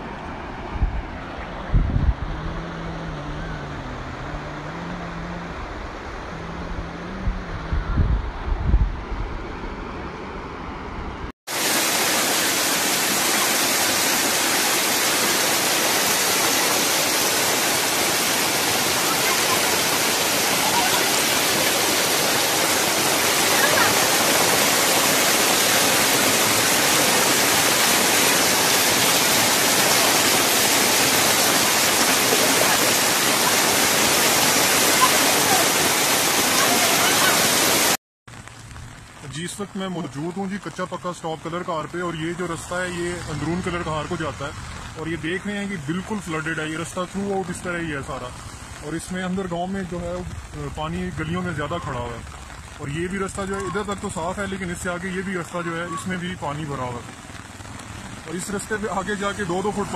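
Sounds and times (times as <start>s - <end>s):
floodwater rushing: 0.0s - 59.9s
softer flowing water: 0.0s - 59.9s
wind buffeting microphone: 0.6s - 4.7s, 5.3s - 9.8s.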